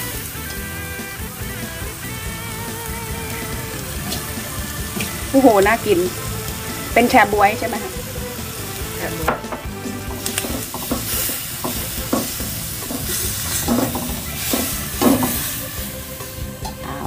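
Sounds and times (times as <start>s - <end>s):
food sizzling in oil: 0.0s - 17.0s
spatula scraping and tapping pan: 9.2s - 15.9s.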